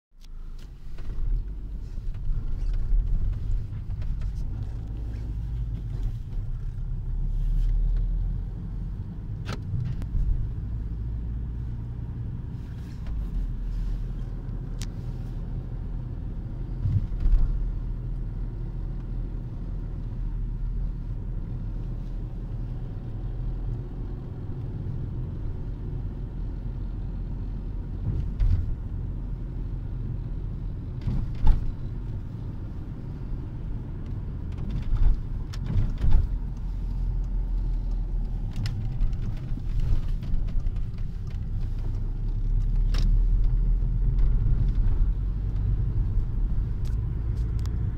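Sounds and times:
engine and road noise rumble: 0.1s - 47.9s.

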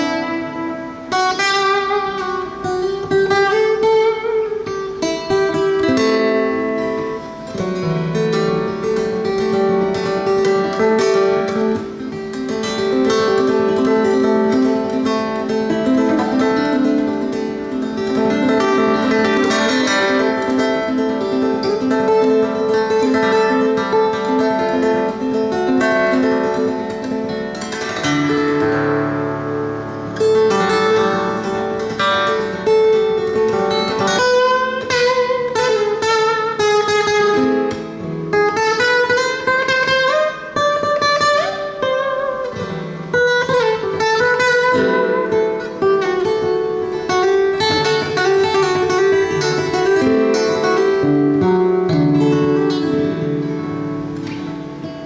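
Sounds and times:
fingerstyle acoustic guitar: 0.0s - 55.0s.

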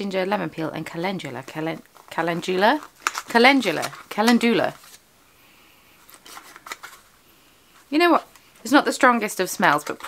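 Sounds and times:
paper rustling: 2.0s - 5.0s, 6.0s - 7.1s.

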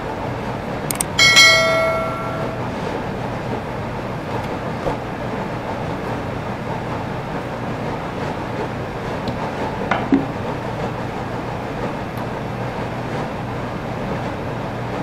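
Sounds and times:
steady background hum: 0.0s - 15.0s
bright bell-like ding: 1.2s - 2.8s.

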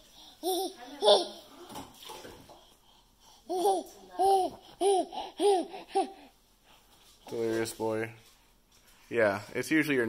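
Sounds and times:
baby giggling: 0.4s - 1.4s, 3.5s - 6.3s
baby laughing: 0.4s - 1.4s, 3.5s - 6.3s.

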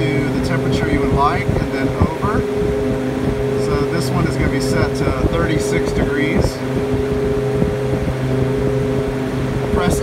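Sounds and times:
refrigeration unit humming: 0.0s - 10.0s.

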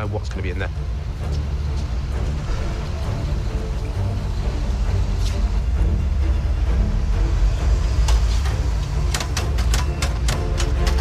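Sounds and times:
deep drone: 0.0s - 11.0s
low tense background music: 0.0s - 11.0s.

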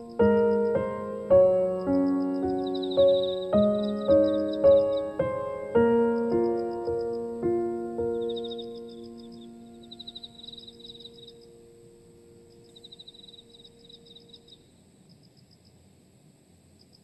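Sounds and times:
soft piano chord: 0.0s - 14.5s
high chirping trills: 0.0s - 14.8s.

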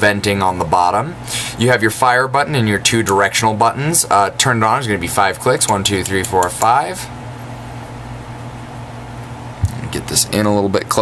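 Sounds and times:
low hum with hiss: 0.0s - 11.0s.

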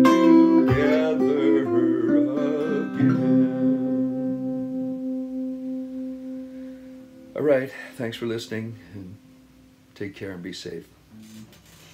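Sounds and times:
acoustic guitar chord ringing: 0.0s - 9.8s.

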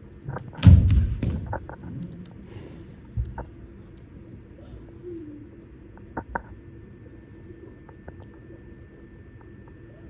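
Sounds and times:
body thudding onto stage floor: 0.6s - 1.6s.

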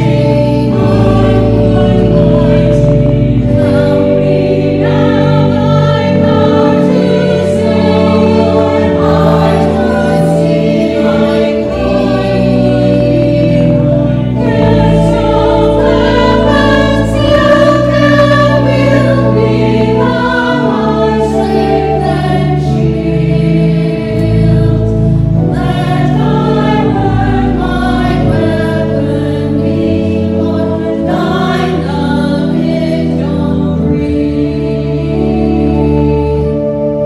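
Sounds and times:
church choir singing: 0.0s - 37.0s
organ playing low notes: 0.0s - 37.0s.

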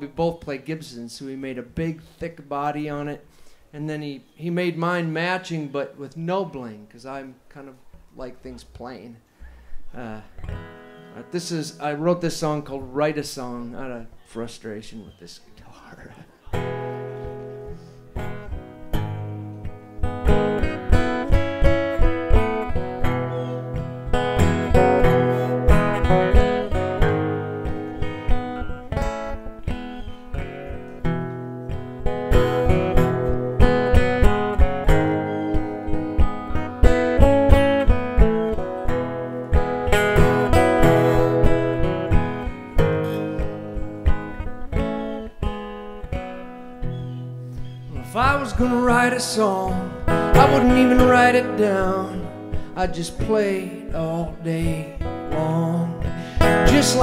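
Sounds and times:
acoustic guitar picked and strummed: 9.4s - 13.6s, 16.0s - 57.0s.

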